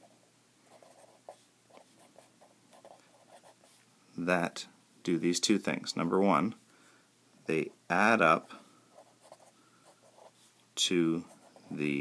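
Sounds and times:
pen scratching on paper: 0.7 - 3.6, 9.0 - 10.4.

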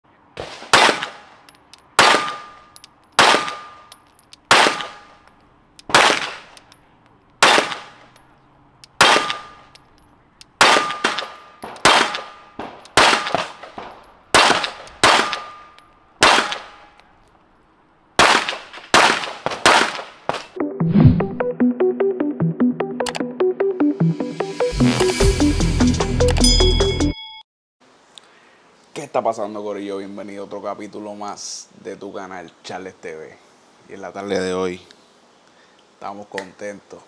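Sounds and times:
pistol shots: 0.4 - 1.3, 2.0 - 2.6, 3.2 - 3.8, 4.5 - 5.1, 5.9 - 6.5, 7.4 - 8.1, 9.0 - 9.6, 10.6 - 15.6, 16.2 - 16.8, 18.2 - 20.2
brief ringing tone: 26.4 - 27.4.

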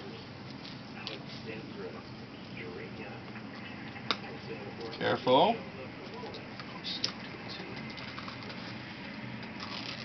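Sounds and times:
dressing and tape crinkling: 7.8 - 10.0.

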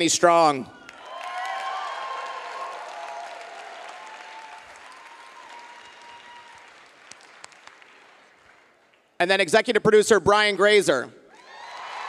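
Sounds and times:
audience applauding: 0.8 - 9.1, 11.5 - 12.0.

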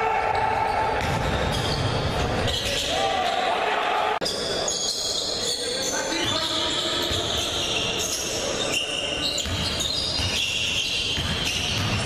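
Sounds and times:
voices echoing in gym: 0.0 - 12.0
basketball bouncing on court: 9.4 - 12.0.

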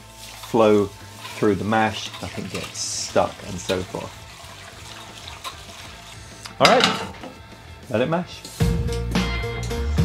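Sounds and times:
whisk swishing in thick mash: 0.0 - 6.1.

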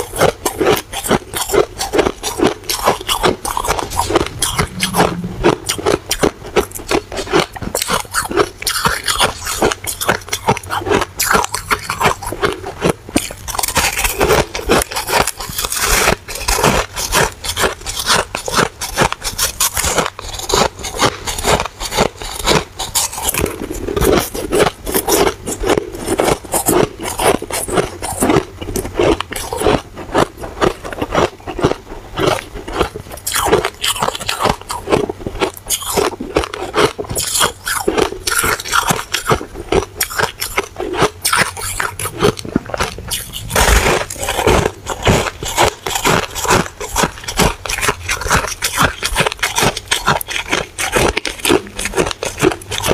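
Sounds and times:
person crunching ice: 0.0 - 52.9.

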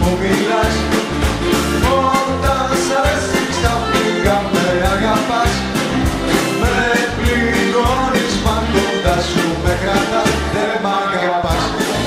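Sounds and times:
rock band playing: 0.0 - 10.6.

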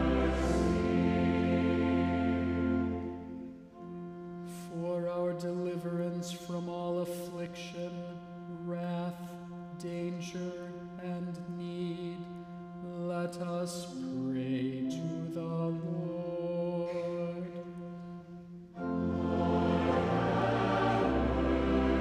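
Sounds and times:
low organ note: 0.0 - 4.8, 15.7 - 22.0
man chanting: 4.5 - 18.1.

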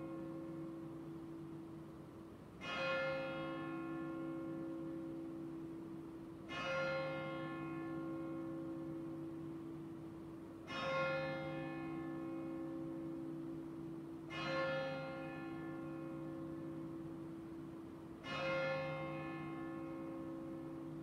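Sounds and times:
church bell tolling: 0.0 - 1.5, 2.6 - 10.0, 10.6 - 21.0.

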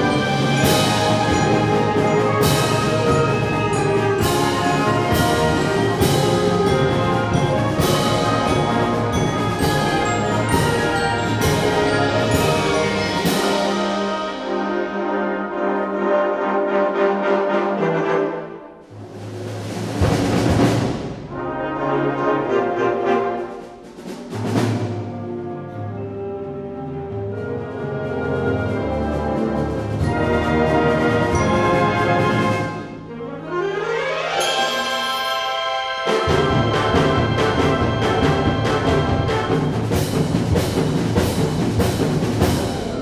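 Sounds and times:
soft woodwinds: 0.0 - 20.0, 21.2 - 43.0
brass and percussion accents: 0.0 - 43.0
wind band playing: 0.0 - 43.0.

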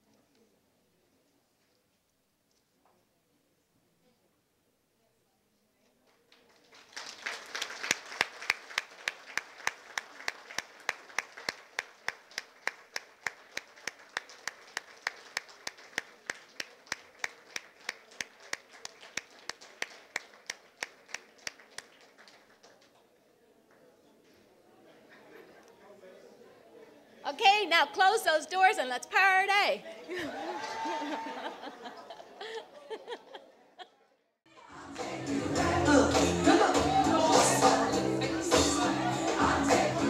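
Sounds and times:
close hands clapping: 6.1 - 23.1
crowd applauding: 6.3 - 23.0, 30.1 - 33.2.

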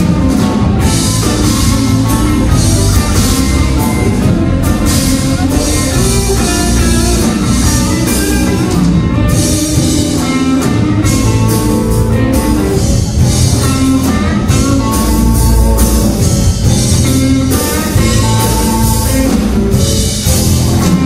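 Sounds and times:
bass guitar: 0.0 - 21.0
drum kit: 0.0 - 21.0
electric guitar: 0.0 - 21.0.

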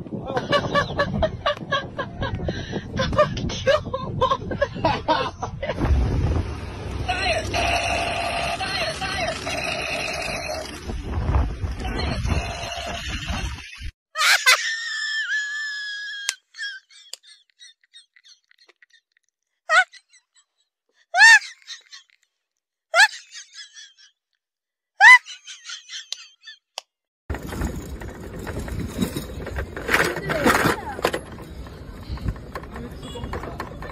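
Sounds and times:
motor scooter running: 5.8 - 13.6, 27.3 - 33.9
squeaky chirps: 15.5 - 20.6, 21.2 - 22.2.

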